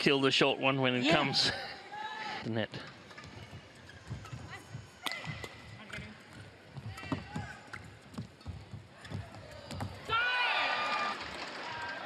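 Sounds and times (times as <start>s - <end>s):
shoes squeaking on court mat: 3.0s - 10.1s
rackets striking shuttlecock: 4.1s - 6.2s.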